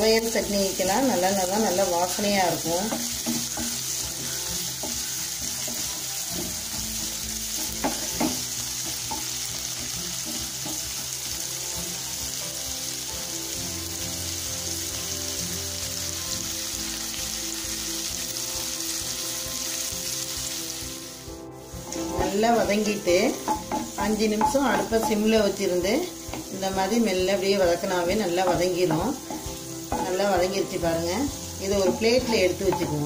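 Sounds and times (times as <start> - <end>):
vegetables sizzling in oil: 0.0 - 33.0.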